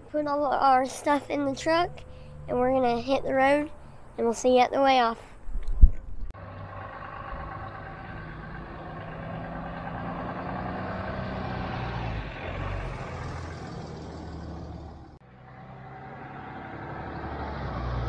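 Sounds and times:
pickup truck driving past: 0:06.4 - 0:18.0.

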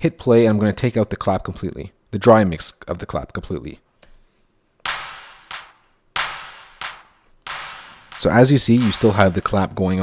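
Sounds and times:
drum-machine handclap reverb: 0:04.9 - 0:09.6.

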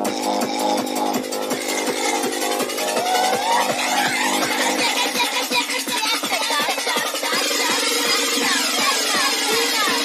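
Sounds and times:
fast kick drum: 0:00.0 - 0:10.0.

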